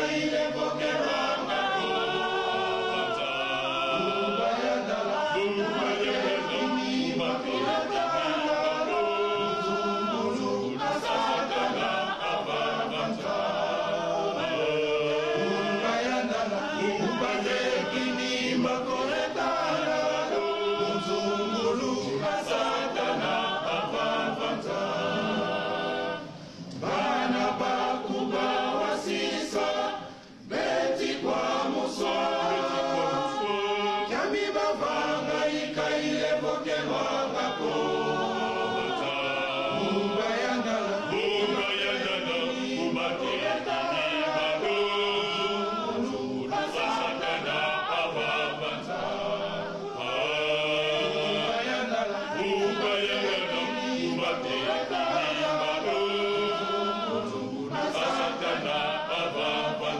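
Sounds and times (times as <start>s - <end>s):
male choir singing: 0.0s - 59.9s.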